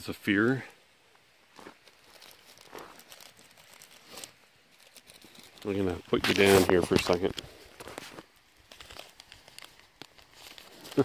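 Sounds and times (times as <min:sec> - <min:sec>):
phone handling rustles: 0:02.5 - 0:11.0.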